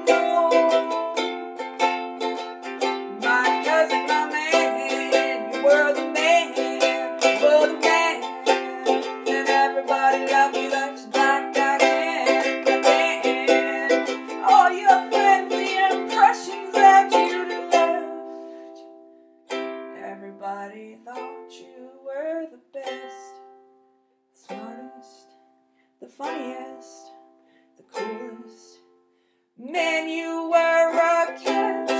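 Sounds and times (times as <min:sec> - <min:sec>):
ukulele strumming chords: 0:00.0 - 0:23.8, 0:24.4 - 0:25.5, 0:26.1 - 0:29.0, 0:29.6 - 0:31.9.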